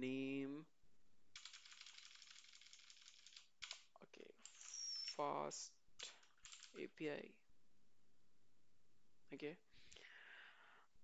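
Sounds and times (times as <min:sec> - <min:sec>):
keyboard keystrokes: 0:01.4 - 0:03.9, 0:06.0 - 0:06.8.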